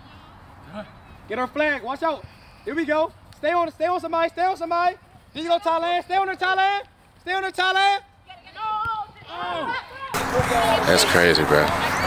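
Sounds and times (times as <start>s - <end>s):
voices shouting: 7.6s - 12.0s.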